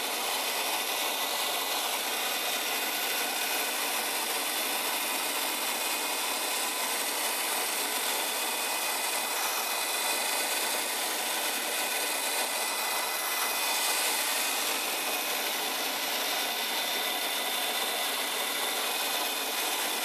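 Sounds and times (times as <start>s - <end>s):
vacuum haircutter running: 0.0s - 20.0s.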